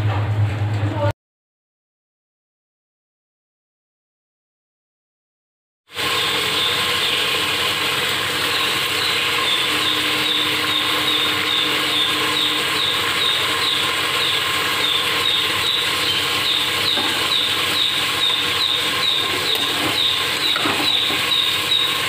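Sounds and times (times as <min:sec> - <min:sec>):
curry simmering and sizzling: 0:05.9 - 0:22.0.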